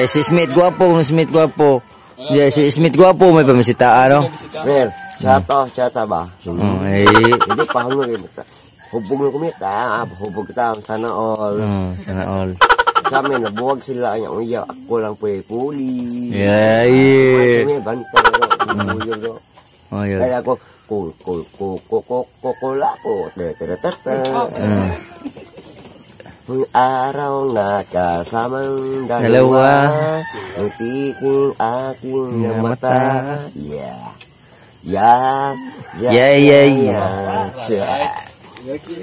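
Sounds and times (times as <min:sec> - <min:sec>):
person speaking: 0:00.0 - 0:08.3
crickets trilling: 0:00.0 - 0:39.0
man making sing-song calls: 0:00.0 - 0:39.0.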